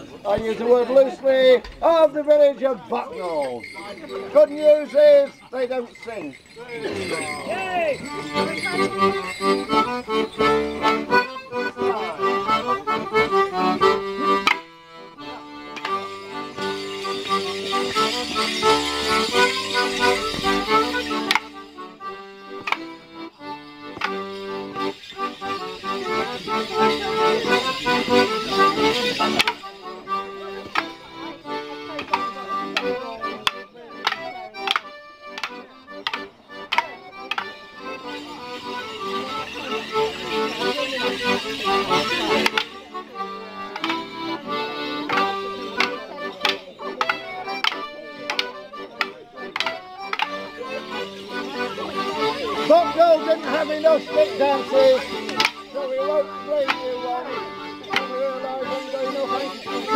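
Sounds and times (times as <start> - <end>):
leg bells jingling: 0.0 - 59.9
wooden sticks clacking together: 22.6 - 22.9, 29.0 - 29.7, 32.0 - 37.6, 42.3 - 42.8, 43.8 - 44.0, 45.0 - 50.4, 55.2 - 55.6.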